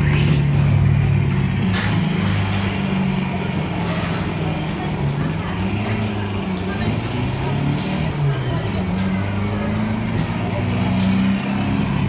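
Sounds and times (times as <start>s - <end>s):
electronic car engine hum: 0.0s - 1.8s.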